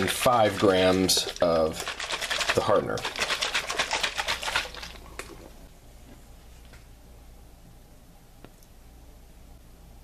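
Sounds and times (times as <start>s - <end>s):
fast clicking rattle: 0.6s - 4.8s.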